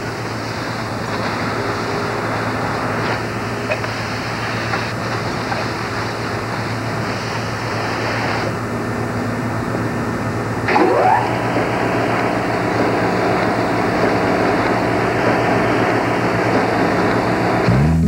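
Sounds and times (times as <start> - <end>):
machinery hum: 0.0 - 18.0
short rising whine: 8.6 - 18.0
low drone: 10.6 - 18.0.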